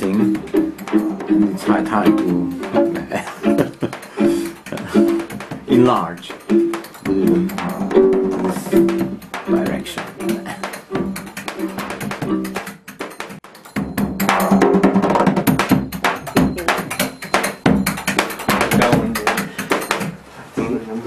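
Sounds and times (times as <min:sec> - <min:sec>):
guitar playing: 0:00.0 - 0:12.7
hand drum struck in quick rhythm: 0:00.0 - 0:20.2.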